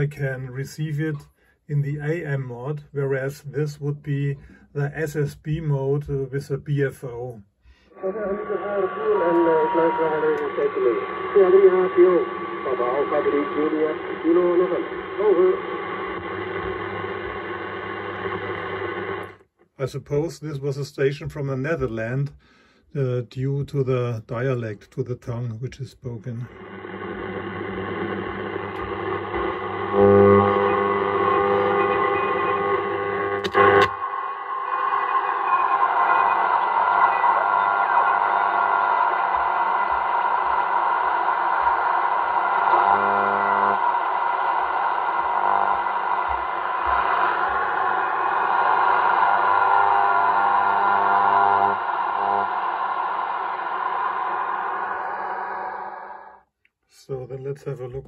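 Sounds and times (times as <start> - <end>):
steady radio tones: 0.0 - 22.1, 23.8 - 56.4
shortwave radio noise: 1.7 - 19.4, 26.0 - 56.4
distorted radio signals: 8.0 - 19.4, 26.3 - 56.4.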